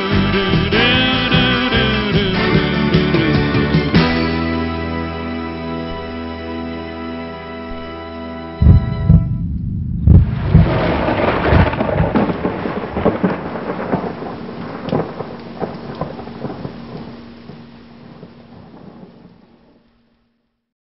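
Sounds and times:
steady rain: 0.0s - 9.4s, 10.1s - 20.7s
thunder rumbling and crackling: 8.6s - 20.0s.

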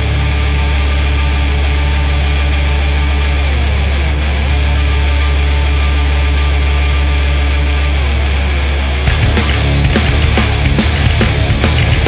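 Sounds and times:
bass guitar: 0.0s - 12.0s
distorted electric guitars: 0.0s - 12.0s.

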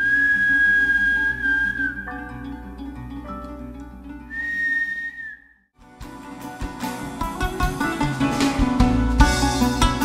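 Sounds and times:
high whistle-like tone: 0.0s - 2.2s, 4.3s - 5.6s
live band playing: 6.0s - 10.0s.

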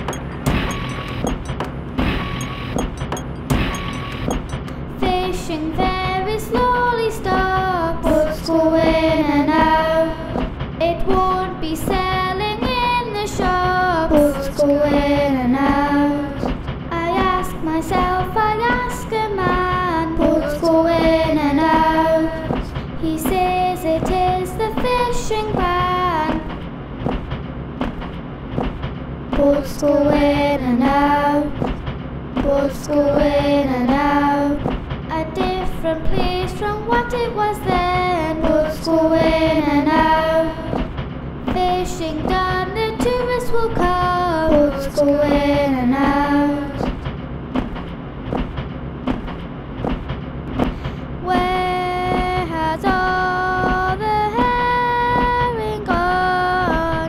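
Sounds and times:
train rumbling along track: 0.0s - 57.0s
wheels clacking over rail joints: 0.0s - 57.0s
child singing: 5.0s - 26.5s, 29.4s - 31.6s, 32.4s - 40.8s, 41.5s - 47.0s, 51.2s - 57.0s.

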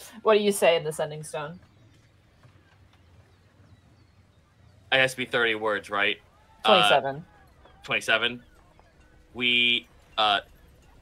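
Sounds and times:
low steady hum: 0.0s - 11.0s
man speaking: 4.9s - 7.0s, 7.8s - 8.4s, 9.3s - 10.5s.

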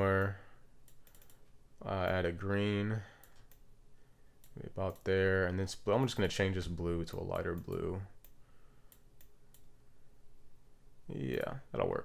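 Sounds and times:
faint low hum: 0.0s - 12.0s
computer mouse clicks: 0.2s - 2.2s, 7.0s - 9.7s.

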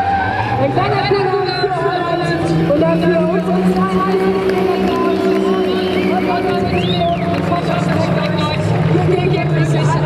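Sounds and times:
car engines at high revs: 0.0s - 10.0s
voices: 0.6s - 10.0s.

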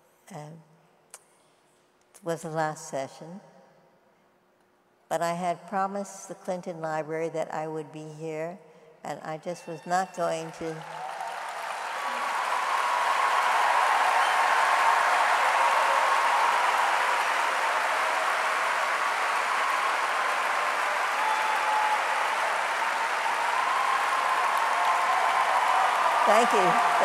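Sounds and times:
large audience applauding: 10.4s - 27.0s.

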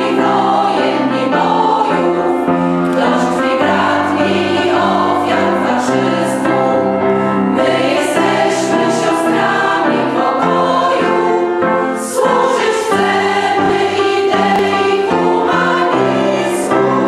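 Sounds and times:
women's choir singing: 0.0s - 17.0s.

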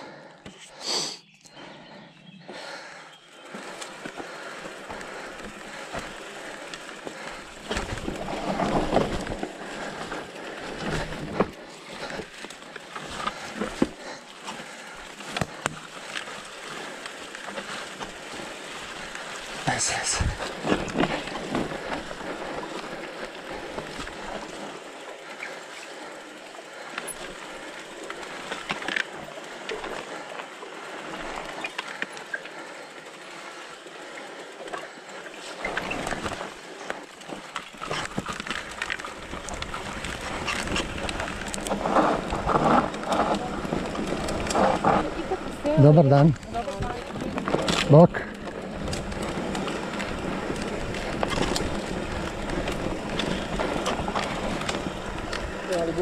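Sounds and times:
bike tyres on dirt trail: 0.0s - 56.0s
bike knocks and rattles: 3.6s - 19.3s, 46.4s - 56.0s.

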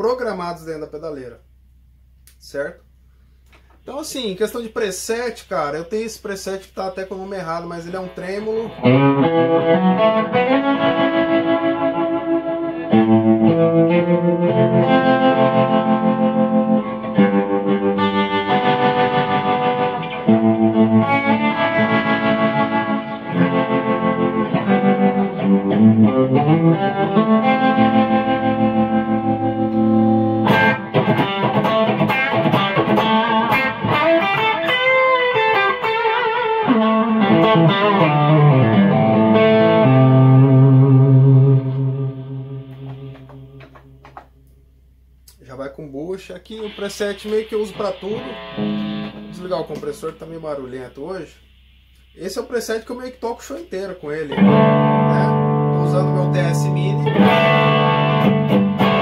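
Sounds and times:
electric guitar with tremolo: 6.0s - 44.7s, 46.4s - 59.0s.

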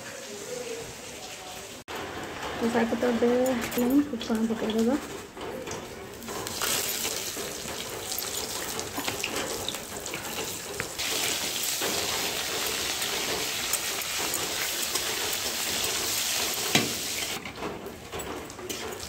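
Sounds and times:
food sizzling in hot oil: 6.4s - 17.4s.

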